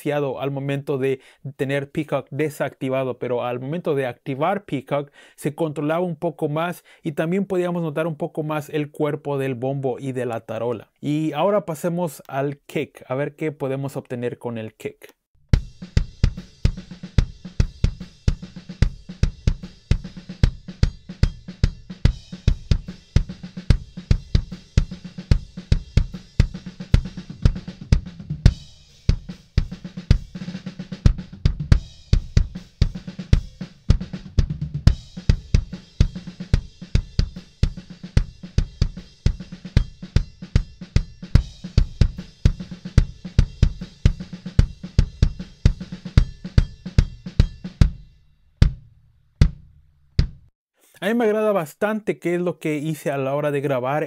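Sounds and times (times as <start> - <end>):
faint snare and cymbals: 15.5 - 48.8
kick drum beat: 15.5 - 50.5.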